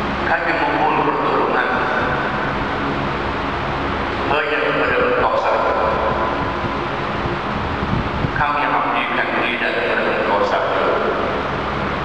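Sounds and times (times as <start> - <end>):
loud low rumbling noise: 0.0 - 12.0
man speaking into microphone: 0.2 - 2.6, 4.3 - 6.3, 8.4 - 11.3.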